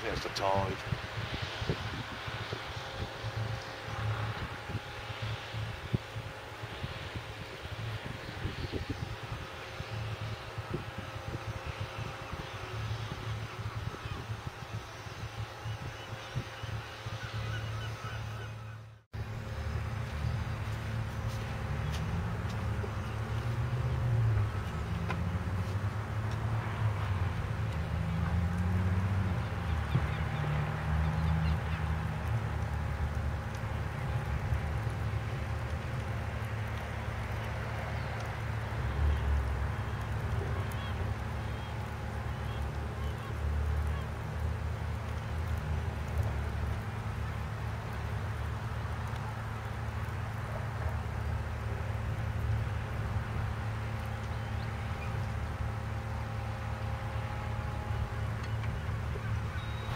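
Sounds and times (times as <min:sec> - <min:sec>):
machinery low rumble: 0:00.0 - 0:59.9
engine revving: 0:21.7 - 0:33.1.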